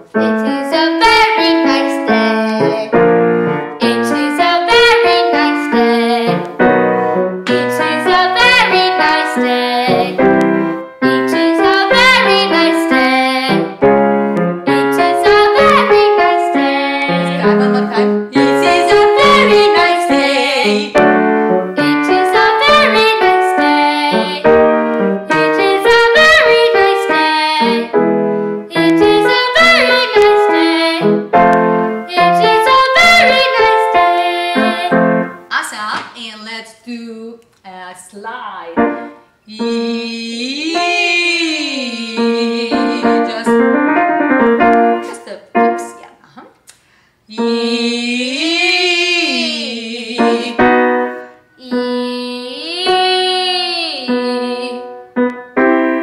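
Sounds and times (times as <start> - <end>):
girl singing vocal warm-up: 0.0 - 6.8, 7.4 - 13.9, 14.6 - 44.0, 44.9 - 55.3
grand piano chords: 0.0 - 35.6, 38.6 - 46.2, 47.4 - 56.0.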